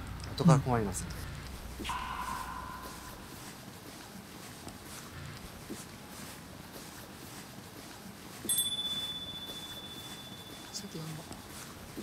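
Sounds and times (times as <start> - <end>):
high chime ringing: 8.5 - 11.2.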